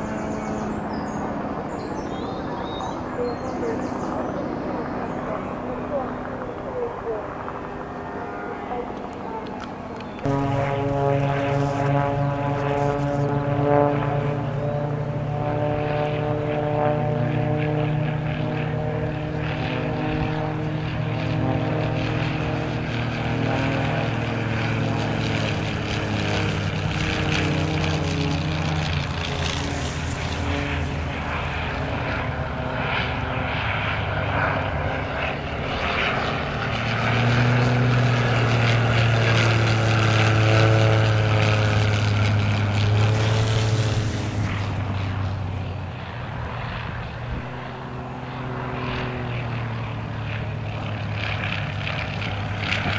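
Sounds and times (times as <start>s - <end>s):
propeller planes droning: 0.0s - 52.9s.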